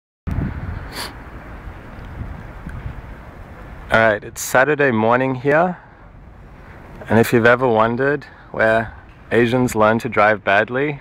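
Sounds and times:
outdoor background noise: 0.3 - 11.0
wind rumbling on microphone: 0.3 - 11.0.

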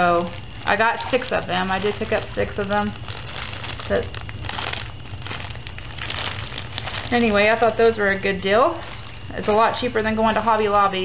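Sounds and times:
plastic sleeves crinkling: 0.0 - 11.0.

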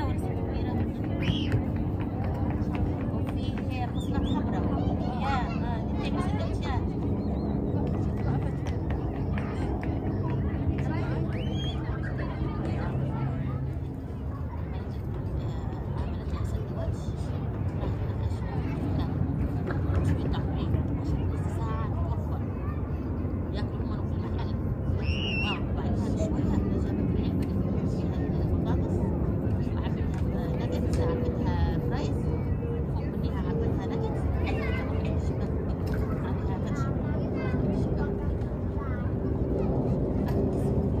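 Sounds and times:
faint voices talking: 0.0 - 41.0
steady low rumble: 0.0 - 41.0.

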